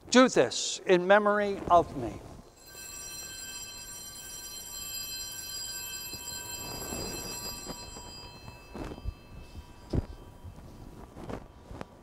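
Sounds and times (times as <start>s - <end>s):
altar bell ringing: 2.4s - 11.2s.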